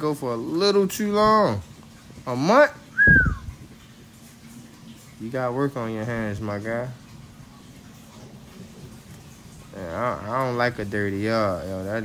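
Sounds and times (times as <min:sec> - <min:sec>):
bird whistle call: 0:03.0 - 0:03.5.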